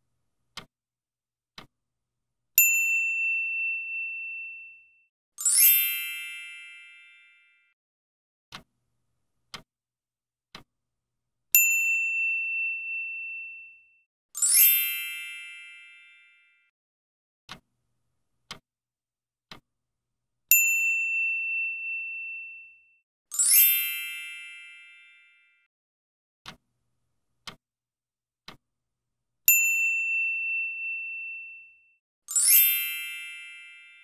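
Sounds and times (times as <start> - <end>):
faint clock ticks: 0.3 - 0.7, 8.5 - 9.7, 10.5 - 10.8, 17.5 - 18.6, 19.5 - 19.7, 26.4 - 27.6, 28.4 - 28.6.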